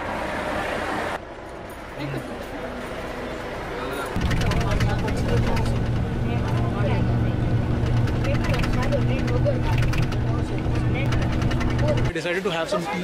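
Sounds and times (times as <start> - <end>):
bus interior drone: 0.0 - 12.2.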